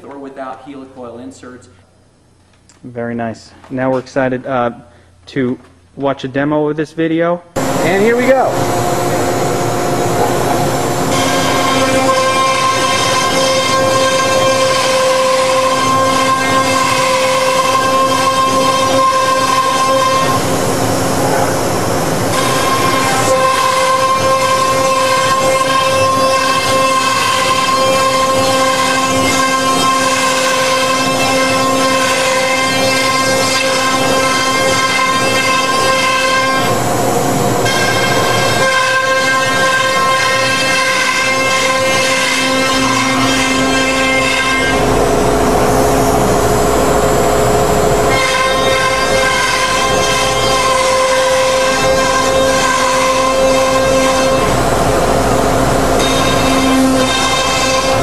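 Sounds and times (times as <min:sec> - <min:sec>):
router spindle whining: 0:07.6 - 0:58.0.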